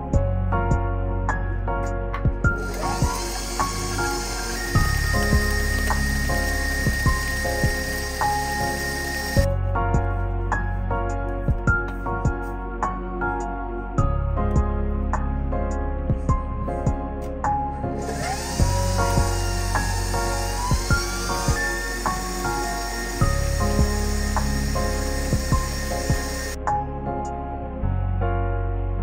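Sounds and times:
background music: 0:00.0 - 0:29.0
high motor tone: 0:02.6 - 0:09.5, 0:18.0 - 0:26.6
stand mixer whisking: 0:02.6 - 0:09.5, 0:18.1 - 0:26.6.

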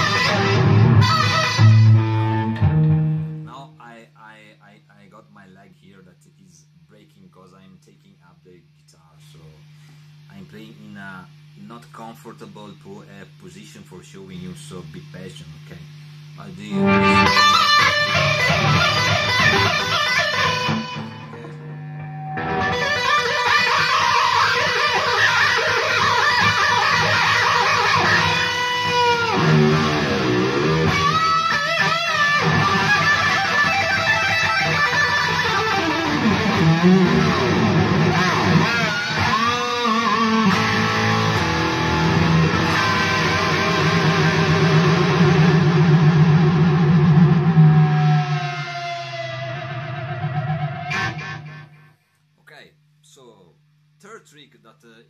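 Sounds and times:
electric guitar with whammy bends: 0:00.0 - 0:03.6, 0:15.8 - 0:52.0.

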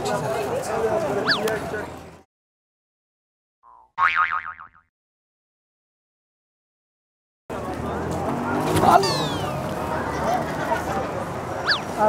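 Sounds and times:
cartoon boing: 0:03.6 - 0:04.9.

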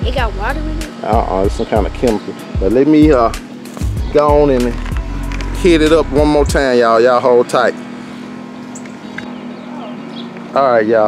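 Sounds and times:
steady low hum: 0:00.0 - 0:10.7.

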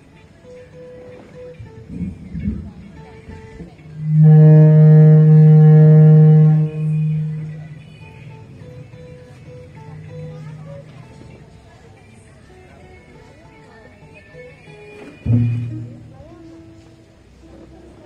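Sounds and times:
guitar through a pa: 0:00.0 - 0:18.0.

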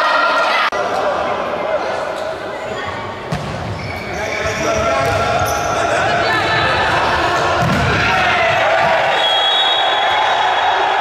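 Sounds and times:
people calling and chatting: 0:00.0 - 0:09.5.

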